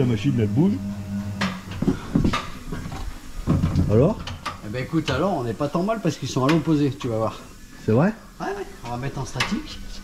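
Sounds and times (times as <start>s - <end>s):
wheel balancing machine humming: 0.0s - 10.0s.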